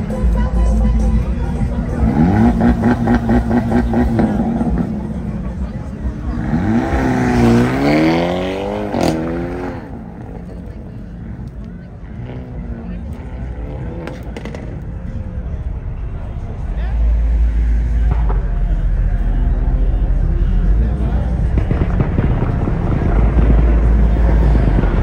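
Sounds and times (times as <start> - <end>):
car engine revving: 0.4 - 25.0
sharp crack: 21.4 - 25.0.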